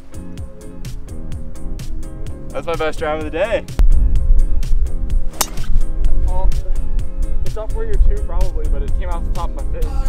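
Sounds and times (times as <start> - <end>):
golf driver striking ball: 5.3 - 6.0.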